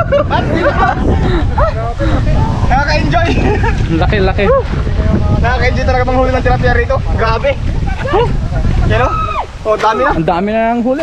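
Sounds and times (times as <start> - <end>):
steady low rumble: 0.0 - 10.4.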